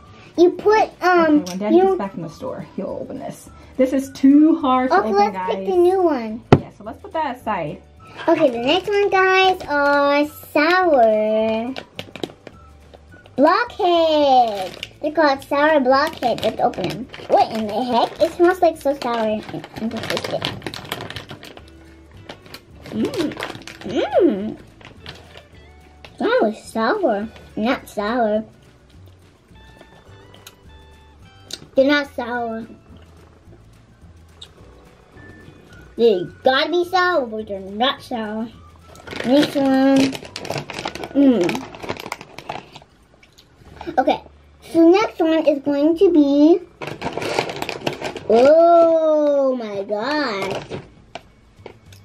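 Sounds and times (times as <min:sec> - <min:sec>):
plastic bag crinkling: 0:08.0 - 0:26.6, 0:38.6 - 0:44.0, 0:46.6 - 0:49.4, 0:50.2 - 0:52.0
child vocal sound: 0:22.9 - 0:24.6.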